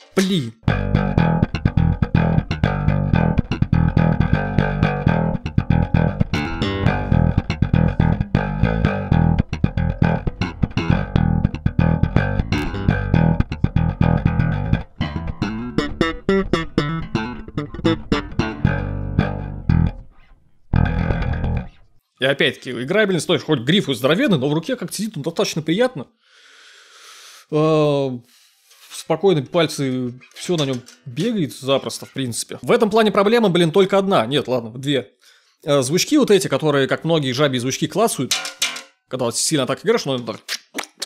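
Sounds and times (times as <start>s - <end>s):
slap electric bass: 0.6s - 21.9s.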